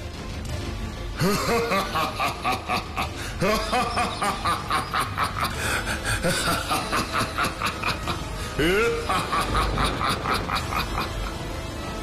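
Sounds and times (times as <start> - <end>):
male demon laughing: 1.2 - 11.6.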